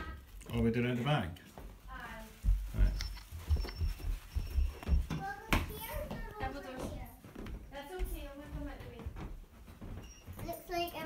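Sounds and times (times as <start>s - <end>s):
children's footsteps on carpet: 0.1s - 11.0s
child's voice: 5.1s - 7.2s, 10.4s - 11.0s.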